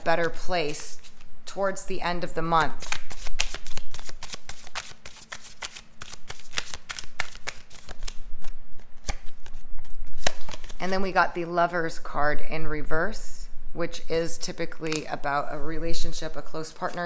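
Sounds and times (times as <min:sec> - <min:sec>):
cards being shuffled: 0:00.2 - 0:01.3, 0:02.8 - 0:10.9.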